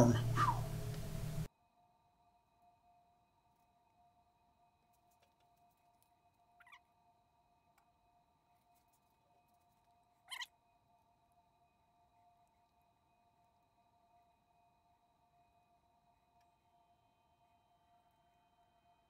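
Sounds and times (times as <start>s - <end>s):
faint high-pitched whine: 0.0s - 19.0s.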